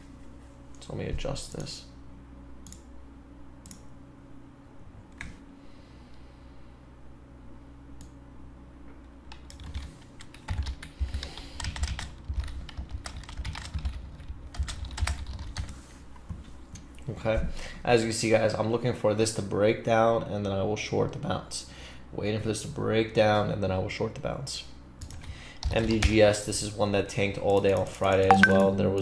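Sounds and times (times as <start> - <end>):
computer keyboard typing: 9.3 - 15.7.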